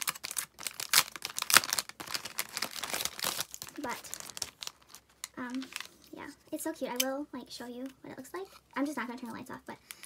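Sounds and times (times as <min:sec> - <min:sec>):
plastic packaging crinkling: 0:00.0 - 0:06.4.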